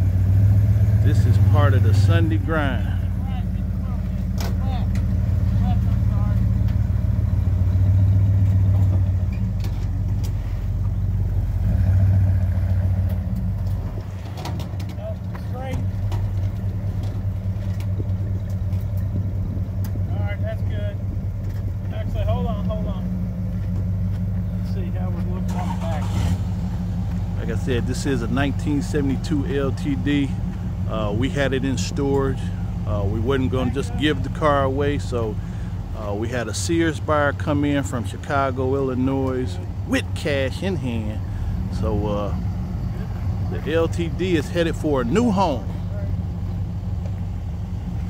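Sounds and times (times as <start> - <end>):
car engine idling: 0.0 - 48.0.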